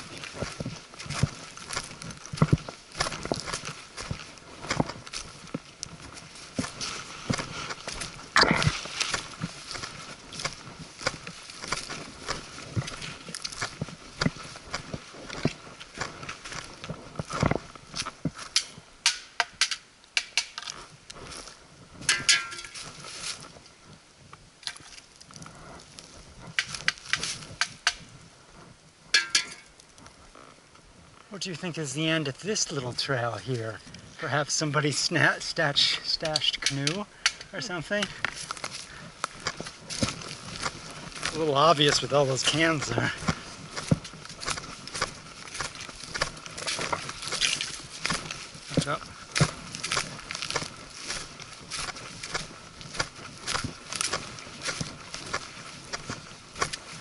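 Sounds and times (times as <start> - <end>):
footsteps crunching dry leaves: 0.0 - 19.4, 20.6 - 30.5, 31.3 - 57.0
hiking pole clicks and knocks: 16.9 - 20.9, 22.0 - 22.9, 24.6 - 25.3, 26.5 - 28.1, 29.1 - 29.8, 36.2 - 37.6.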